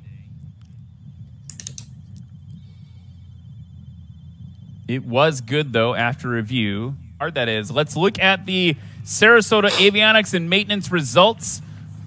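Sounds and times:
low steady hum: 0.0 - 12.0
faint clicks: 0.5 - 3.3.

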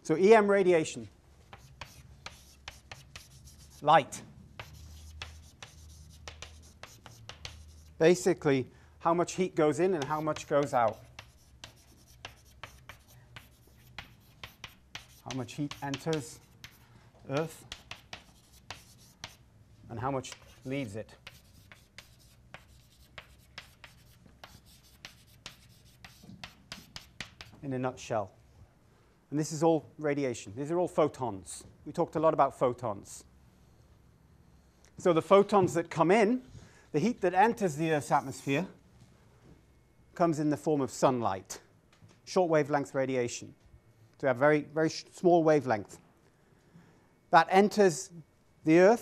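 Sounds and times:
chalk scratching on blackboard: 1.5 - 8.2, 9.8 - 19.4, 20.2 - 27.6.

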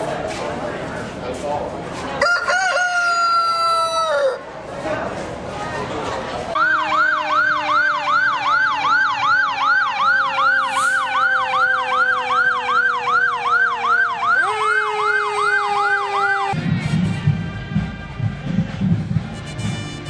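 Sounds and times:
fire engine siren yelping: 6.6 - 16.6.

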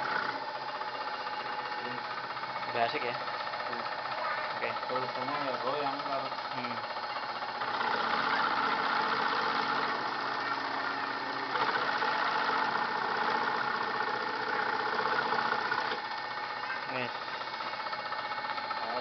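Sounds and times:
scroll saw cutting wood: 0.0 - 2.6, 3.3 - 19.0.

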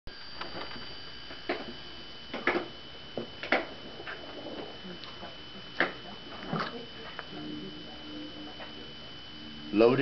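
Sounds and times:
faint high whine: 0.1 - 10.0.

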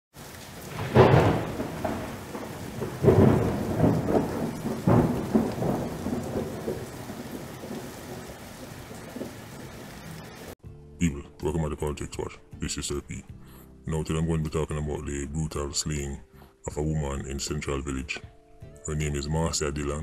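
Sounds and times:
deep rumbling booms: 0.8 - 8.2.

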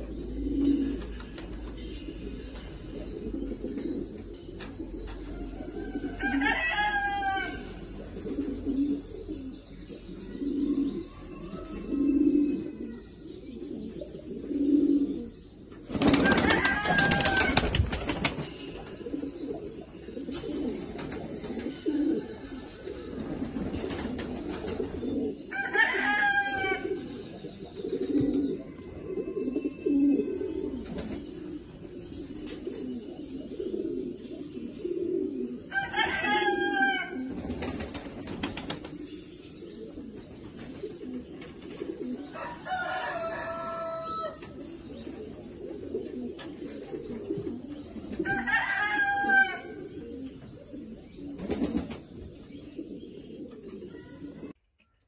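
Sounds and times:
pigeons cooing: 0.0 - 54.6
wings flapping: 15.9 - 19.0, 37.4 - 39.0, 51.4 - 52.0.

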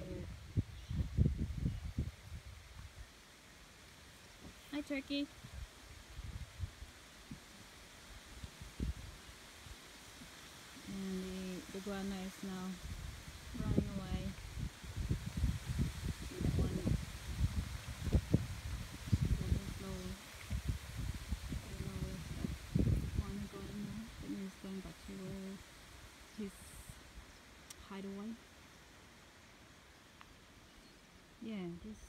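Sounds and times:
low rumbling on microphone: 0.0 - 3.0, 4.4 - 7.6, 8.4 - 9.3, 10.9 - 25.7
steady low hiss: 0.0 - 32.0.

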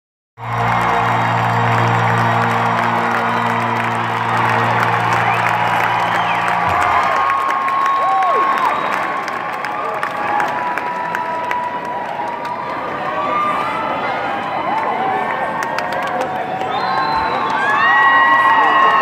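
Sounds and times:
band low held chord: 0.4 - 7.4
crowd whistles: 0.4 - 9.3, 16.6 - 19.0
crowd cheering and applauding: 0.4 - 19.0.

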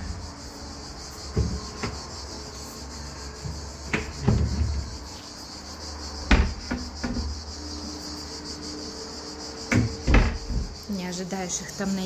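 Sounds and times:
cabinet doors knocking shut: 3.9 - 4.9, 6.3 - 7.3, 9.7 - 10.8.

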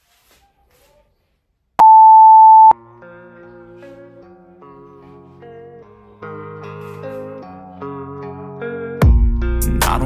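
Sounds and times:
electronic timer beep: 1.8 - 2.8
guitar background music: 2.8 - 10.0.

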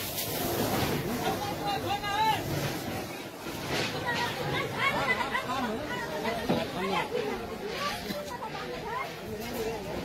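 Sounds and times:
people talking at once: 1.0 - 10.0.

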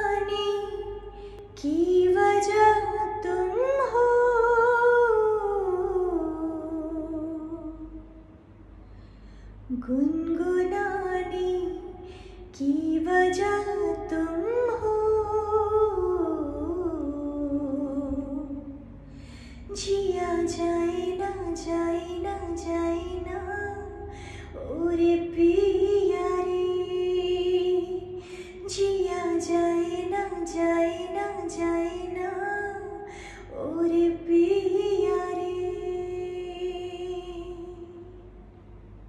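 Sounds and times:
woman singing: 0.0 - 8.0, 9.7 - 18.8, 19.7 - 38.1.

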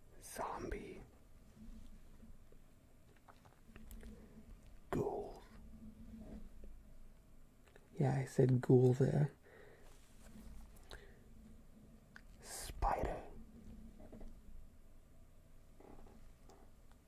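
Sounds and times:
man whispering: 0.0 - 1.9, 3.9 - 6.6, 12.3 - 13.8.

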